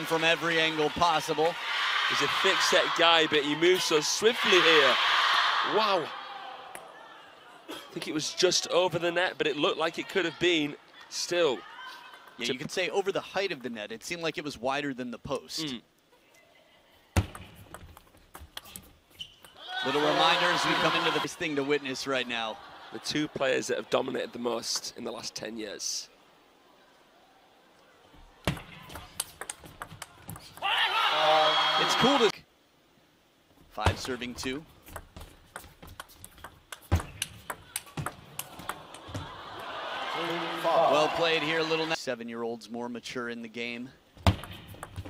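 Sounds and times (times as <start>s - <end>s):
crowd noise: 0.0s - 13.6s, 19.6s - 32.4s, 37.1s - 42.0s
table tennis ball knocks: 34.9s - 38.8s.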